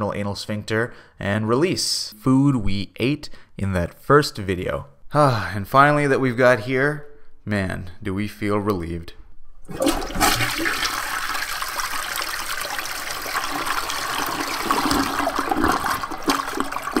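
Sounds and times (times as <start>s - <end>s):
toilet flushing: 9.7s - 17.0s.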